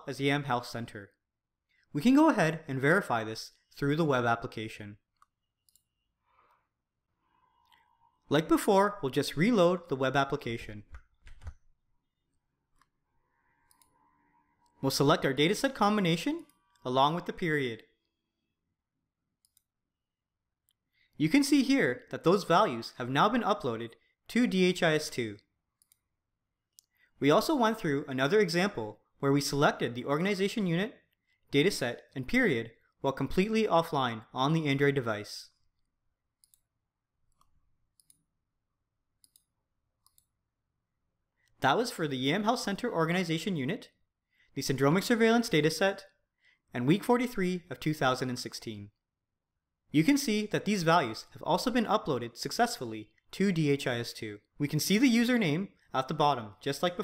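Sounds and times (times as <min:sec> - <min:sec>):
man's voice: 0:02.0 - 0:04.9, 0:21.2 - 0:25.4, 0:50.0 - 0:57.0
soft clicks: 0:05.1 - 0:05.9, 0:13.7 - 0:13.9, 0:36.4 - 0:36.7, 0:37.3 - 0:38.2, 0:39.2 - 0:40.3
faint computer mouse clicks: 0:39.2 - 0:40.3.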